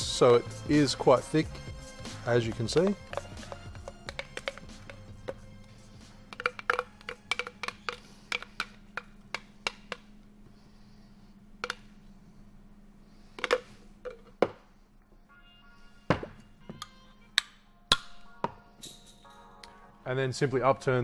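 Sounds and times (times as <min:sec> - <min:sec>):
background music: 0:00.0 - 0:10.0, 0:15.2 - 0:21.0
spoon knocking in blender jar: 0:02.4 - 0:05.5, 0:06.2 - 0:10.1.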